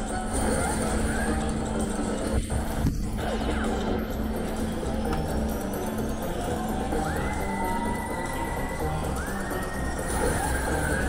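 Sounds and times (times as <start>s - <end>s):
murmur of background noise: 0.0s - 11.0s
slot machine electronic sounds: 0.0s - 11.0s.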